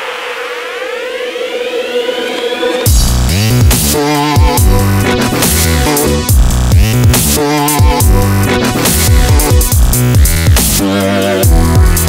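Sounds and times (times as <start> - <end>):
synthesizer riser sweeping upward: 0.0 - 6.3.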